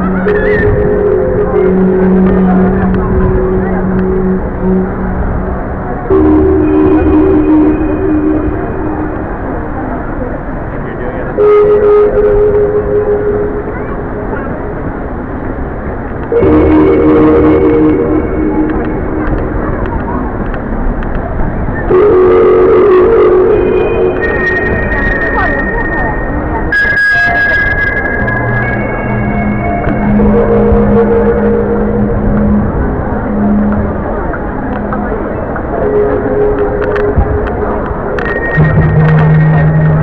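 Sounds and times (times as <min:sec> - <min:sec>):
crowd hubbub: 0:00.0 - 0:40.0
electronic held chords: 0:00.0 - 0:40.0.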